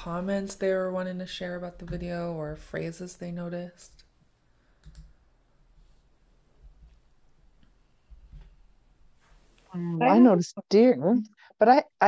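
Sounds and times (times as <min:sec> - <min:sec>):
computer mouse clicks: 0:04.8 - 0:05.2.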